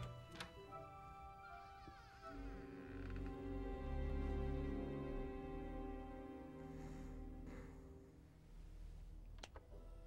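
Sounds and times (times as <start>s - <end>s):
tense film score: 0.0s - 10.0s.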